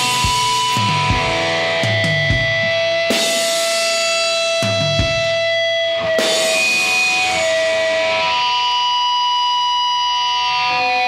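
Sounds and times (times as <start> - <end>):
distorted electric guitar chords: 0.0 - 11.0.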